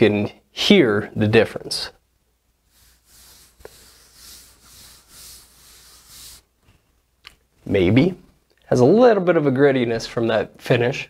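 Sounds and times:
hand rubbing wooden tabletop: 2.6s - 6.9s.

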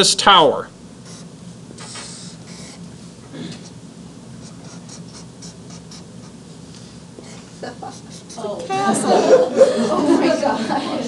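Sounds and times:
felt-tip marker drawing on paper: 1.0s - 2.8s, 4.4s - 6.4s, 7.8s - 8.6s.

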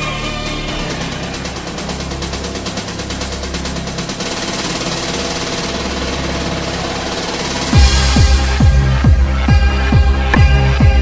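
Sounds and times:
sustained synth pads: 0.0s - 11.0s
stuttering synth pulse: 0.8s - 10.0s.

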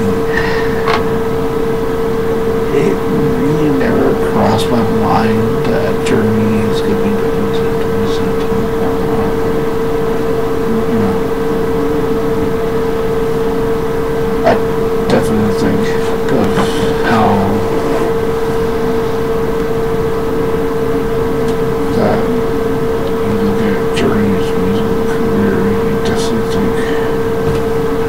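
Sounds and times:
faint voices: 0.0s - 12.9s, 14.2s - 28.0s
steady constant hum: 0.0s - 28.0s.

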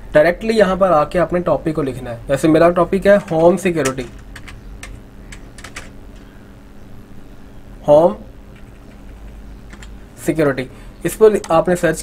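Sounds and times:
computer keyboard typing: 3.1s - 6.0s, 8.5s - 10.0s
clicks: 3.2s - 6.3s, 8.5s - 10.0s, 11.3s - 11.7s.

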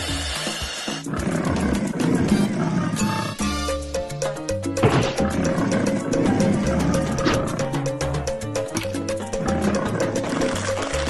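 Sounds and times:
soundtrack music: 1.1s - 11.0s.

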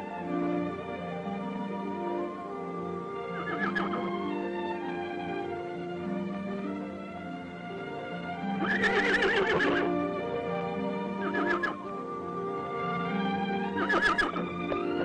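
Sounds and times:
film music with held notes: 0.0s - 15.0s
horse whinnying: 3.2s - 4.2s, 8.6s - 10.0s, 11.2s - 11.9s, 13.8s - 15.0s.

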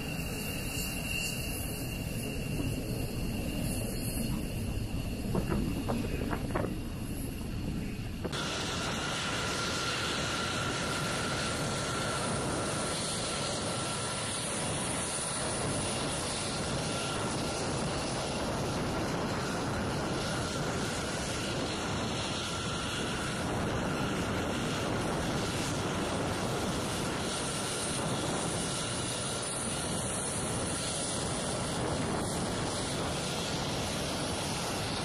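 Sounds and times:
jet engine rush with high whine: 0.0s - 35.0s.

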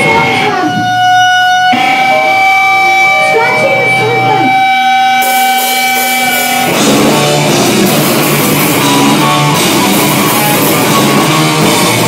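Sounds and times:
ringing electric guitar tone: 0.0s - 12.0s
rock band playing: 0.0s - 12.0s
cymbal wash: 5.0s - 11.2s.

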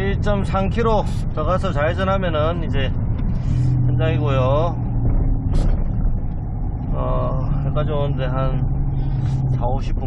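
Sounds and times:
truck engine and road rumble: 0.0s - 10.0s.

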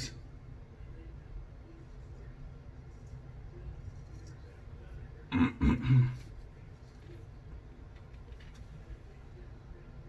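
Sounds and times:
man clearing his throat: 5.3s - 6.3s.

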